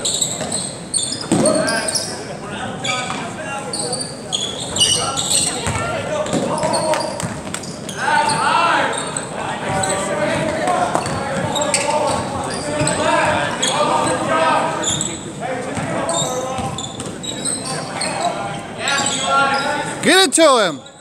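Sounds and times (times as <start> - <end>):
sneakers squeaking: 0.0 - 2.2, 2.8 - 15.2, 15.8 - 19.9.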